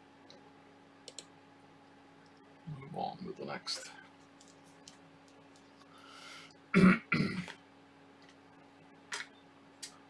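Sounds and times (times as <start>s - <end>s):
person coughing: 6.7s - 7.6s.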